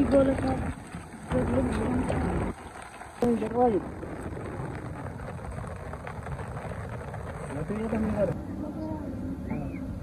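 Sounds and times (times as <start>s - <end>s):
steady rain patter: 0.0s - 8.4s
low rumble: 0.0s - 10.0s.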